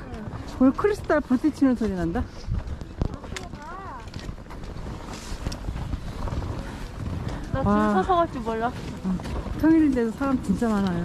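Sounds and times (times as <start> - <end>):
icy branches clinking: 0.0 - 11.0
wind buffeting microphone: 0.0 - 11.0.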